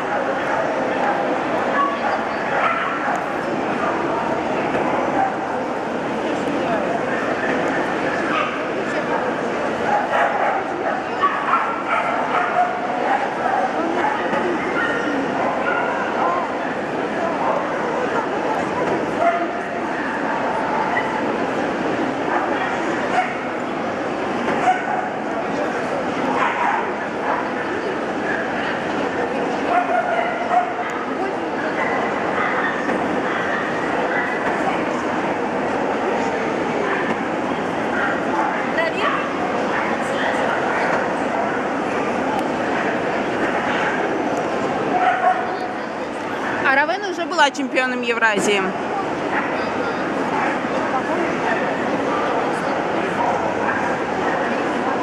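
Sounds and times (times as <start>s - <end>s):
murmur of many voices: 0.0s - 55.0s
dogs yipping and barking: 10.0s - 13.7s, 44.9s - 45.6s.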